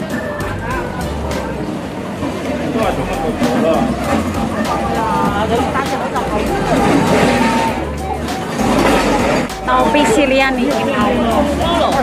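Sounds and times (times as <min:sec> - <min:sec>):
background music: 0:00.0 - 0:12.0
voices talking: 0:00.0 - 0:12.0.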